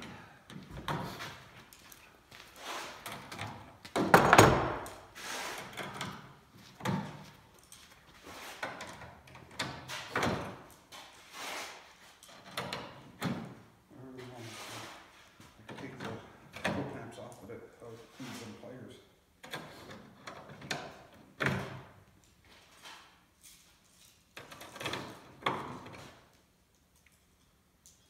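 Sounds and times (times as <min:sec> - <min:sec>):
knocks and clatter of tools and metal: 0:00.0 - 0:18.6, 0:19.4 - 0:28.0.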